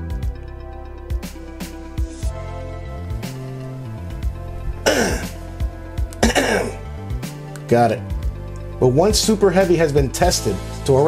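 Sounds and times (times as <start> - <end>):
background music with steady beat: 0.0 - 11.0
man coughing harshly: 4.8 - 5.4, 6.2 - 6.8.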